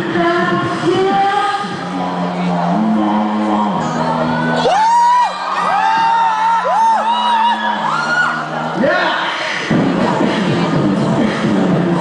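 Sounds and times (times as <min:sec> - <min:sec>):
low voice singing bass notes: 0:00.0 - 0:04.7, 0:07.4 - 0:12.0.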